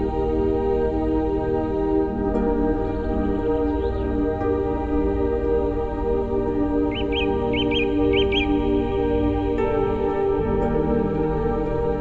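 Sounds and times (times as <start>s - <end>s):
ambient drone music: 0.0s - 12.0s
songbird chirping: 0.0s - 12.0s.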